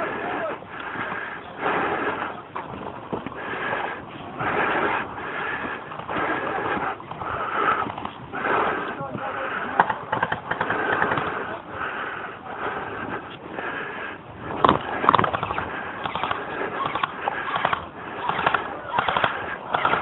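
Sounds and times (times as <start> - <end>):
sharp cracks: 9.8 - 11.4, 14.6 - 20.0
gunfire pops: 14.6 - 20.0.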